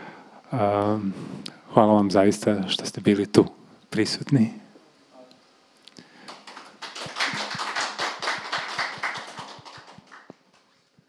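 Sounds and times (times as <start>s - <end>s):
small group applauding: 6.2s - 10.8s.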